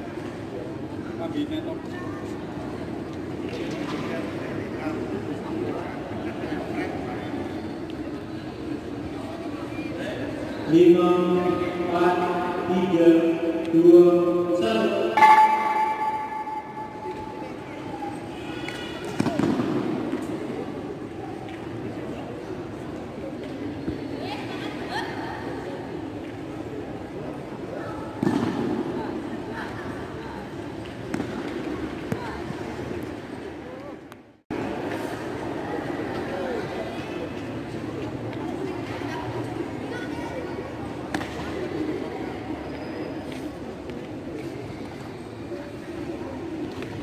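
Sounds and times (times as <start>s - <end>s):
echoing sports hall ambience: 0.0s - 47.0s.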